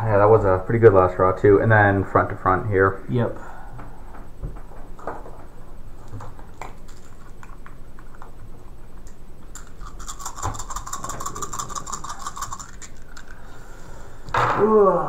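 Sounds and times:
plastic dice rattling in hand: 9.6s - 13.4s.

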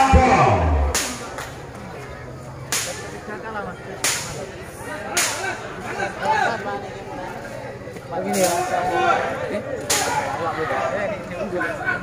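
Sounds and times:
low crowd voices: 0.0s - 12.0s.

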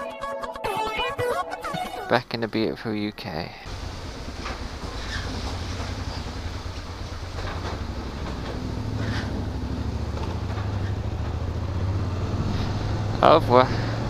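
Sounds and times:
motorcycle engine running: 3.7s - 14.0s.

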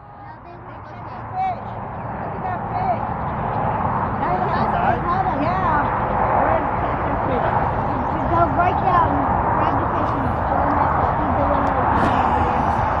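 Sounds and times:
indistinct voices talking: 0.0s - 13.0s
steady rushing noise: 0.0s - 13.0s.

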